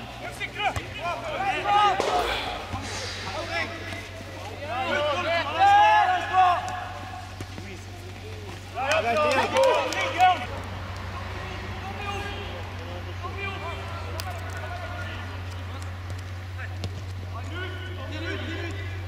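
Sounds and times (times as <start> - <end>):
men shouting: 0.0 - 7.3
ball being kicked: 2.0 - 4.2.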